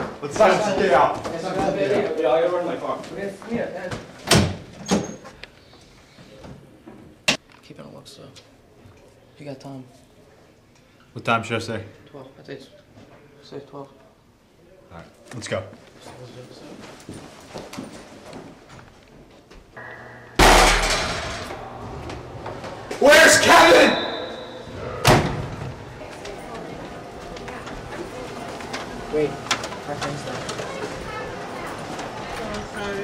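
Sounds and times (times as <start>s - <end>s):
faint knocks and shuffling: 15.2s - 19.7s
door banging: 19.8s - 21.8s.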